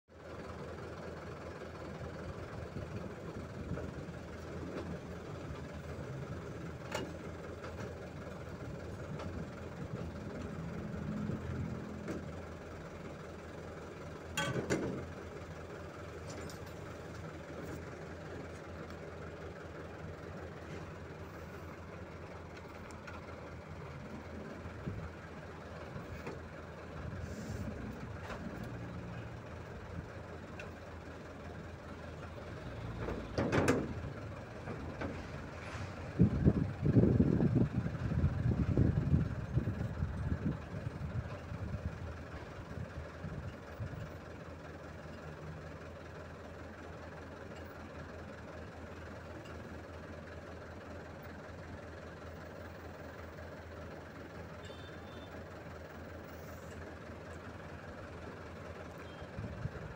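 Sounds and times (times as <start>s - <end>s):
truck engine running: 0.1s - 59.9s.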